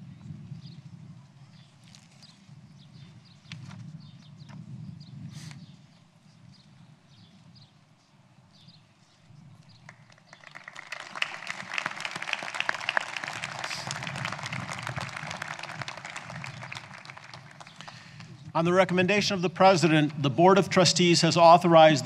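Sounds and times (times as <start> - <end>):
crowd applauding: 9.9 - 18.8.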